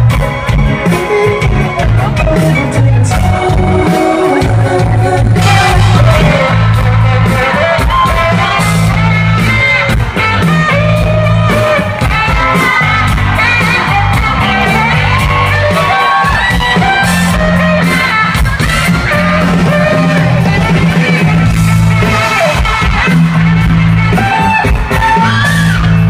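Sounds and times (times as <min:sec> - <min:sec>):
live rock band with singing: 0:00.0 - 0:26.0.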